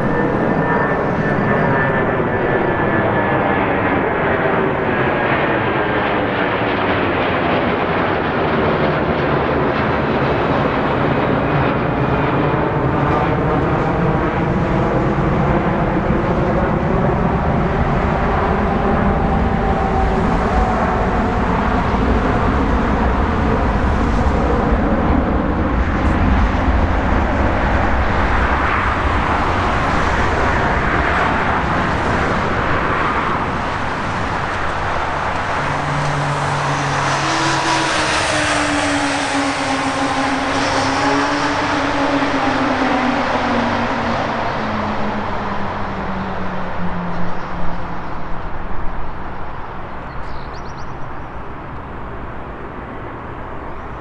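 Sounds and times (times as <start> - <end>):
jet engines roaring: 0.0 - 50.2, 51.0 - 54.0.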